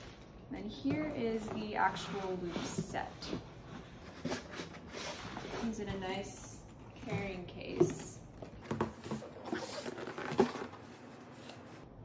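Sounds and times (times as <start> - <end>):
case rustling: 6.8 - 11.7.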